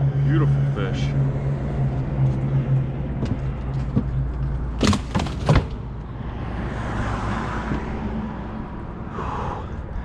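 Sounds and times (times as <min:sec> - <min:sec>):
person exhaling breathily: 0:09.1 - 0:10.0.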